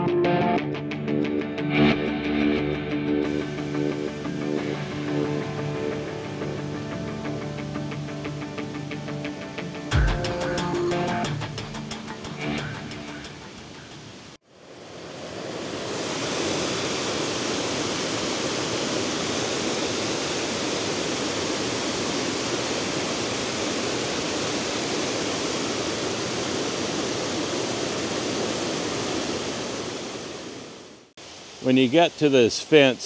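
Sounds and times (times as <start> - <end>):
background music: 0.0 - 14.0
waterfall rushing: 12.1 - 33.0.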